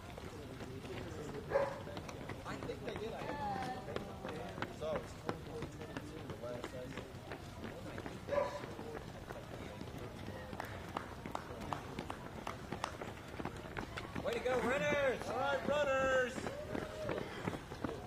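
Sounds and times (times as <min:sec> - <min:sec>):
runners' footsteps on asphalt: 0:00.0 - 0:18.0.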